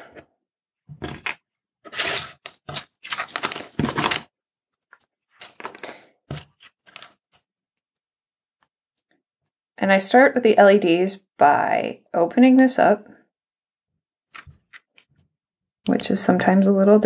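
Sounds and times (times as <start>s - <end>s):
plastic tape crackling and rustling: 1.9s - 4.3s.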